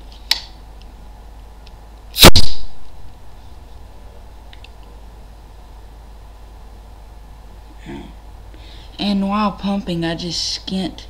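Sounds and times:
toy blaster air blast: 0:02.2 - 0:02.7.

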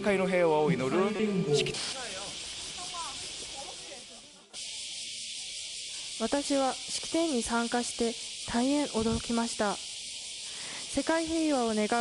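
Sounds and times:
outdoor crowd murmur: 0:00.0 - 0:07.2, 0:08.2 - 0:11.0
cicadas sizzling: 0:00.0 - 0:12.0.

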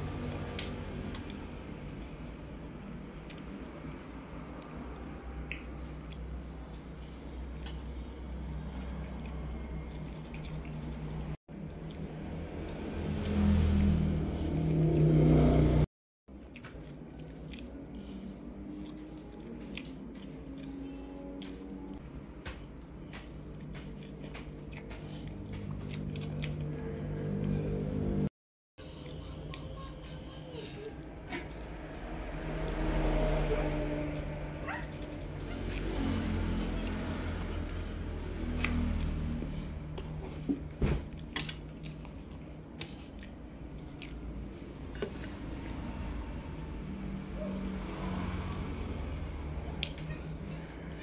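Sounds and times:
chewing soft cake: 0:00.0 - 0:15.7, 0:16.3 - 0:28.1, 0:28.9 - 0:51.0.

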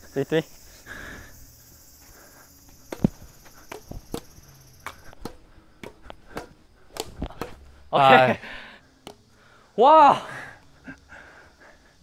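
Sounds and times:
high insect drone: 0:00.0 - 0:12.0
rackets hitting shuttlecock: 0:02.9 - 0:07.7, 0:09.0 - 0:09.3.

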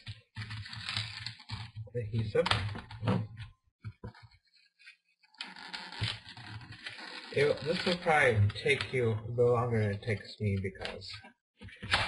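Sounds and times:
scratchy adhesive peeling: 0:04.1 - 0:09.1.

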